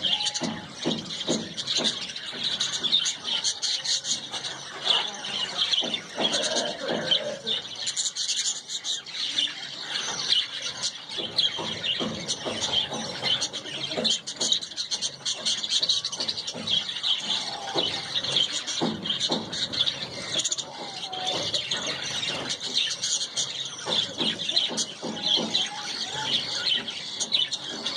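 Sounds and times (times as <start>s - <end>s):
small birds chirping: 0.0s - 27.9s
squeaky bird calls: 0.0s - 27.9s.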